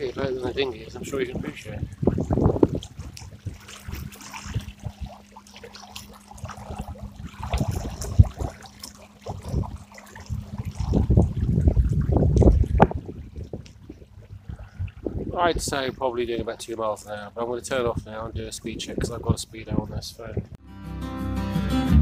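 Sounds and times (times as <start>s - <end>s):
water splashing and churning: 0.0s - 20.5s.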